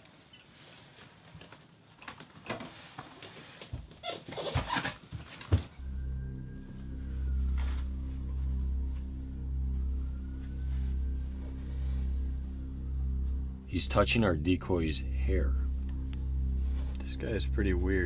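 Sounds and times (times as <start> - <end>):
low droning music: 5.8 - 18.0.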